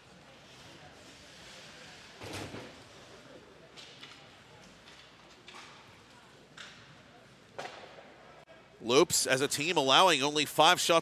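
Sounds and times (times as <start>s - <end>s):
skates sticks and puck on ice: 0.0s - 6.9s.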